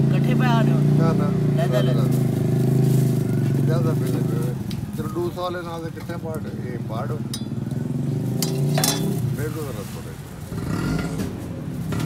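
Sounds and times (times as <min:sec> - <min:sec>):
voices: 0:00.0 - 0:11.7.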